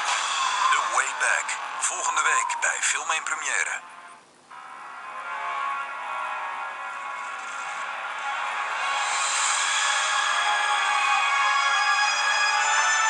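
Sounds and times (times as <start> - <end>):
synth music through phone speaker: 0.0 - 13.0.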